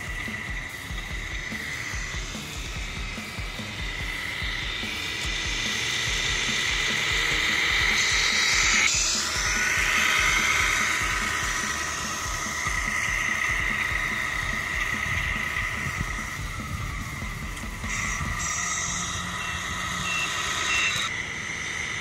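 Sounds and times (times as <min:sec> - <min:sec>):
simulated diesel engine rumble: 0:00.0 - 0:22.0
toy truck motor whine: 0:00.0 - 0:22.0.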